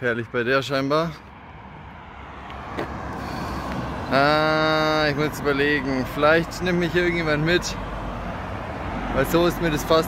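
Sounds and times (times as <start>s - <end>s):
car approaching on asphalt: 0.9s - 10.0s.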